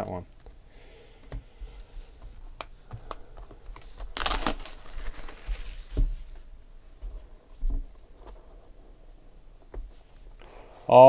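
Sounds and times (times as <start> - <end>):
plastic wrap crinkling: 2.4 - 6.6.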